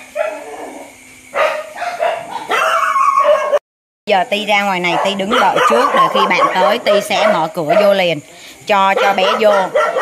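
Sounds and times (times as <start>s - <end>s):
dogs barking and yipping: 0.0s - 3.6s, 4.8s - 10.0s.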